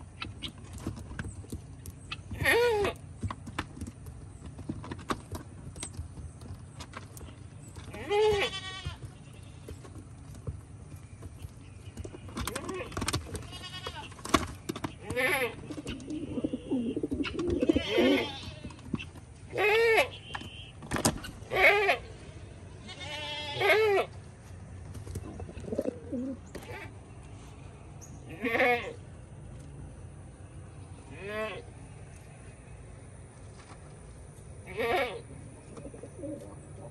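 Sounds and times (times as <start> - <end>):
farm animal bleating: 2.0 - 3.0, 7.9 - 9.9, 11.8 - 14.2, 14.9 - 20.8, 21.4 - 24.2, 28.1 - 29.1, 30.9 - 31.9, 34.6 - 35.6
pigeons cooing: 12.0 - 20.4, 25.1 - 27.0, 34.7 - 36.9.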